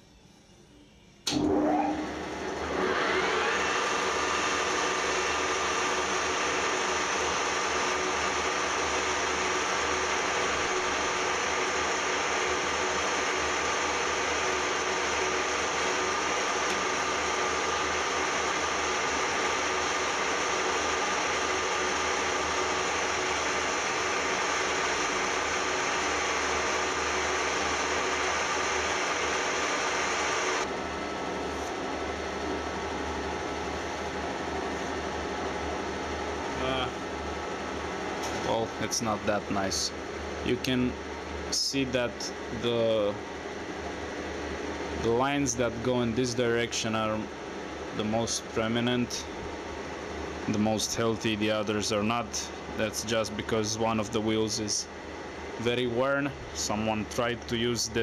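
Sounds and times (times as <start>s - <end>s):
metal lathe whining: 1.3s - 30.7s.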